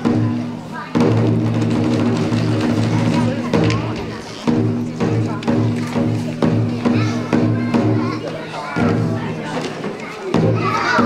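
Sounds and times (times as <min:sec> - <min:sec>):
loud drum stroke: 0:00.0 - 0:11.0.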